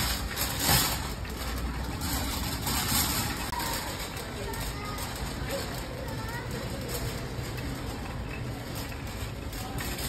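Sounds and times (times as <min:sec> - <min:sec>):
cart wheels rolling on concrete: 0:00.0 - 0:10.0.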